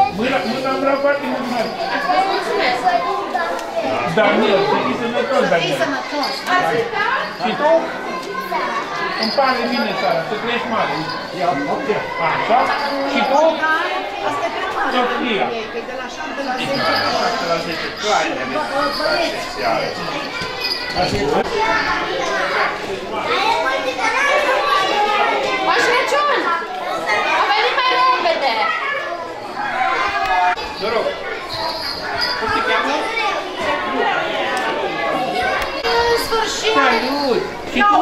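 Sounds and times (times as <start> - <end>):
children's voices and chatter: 0.0 - 38.0.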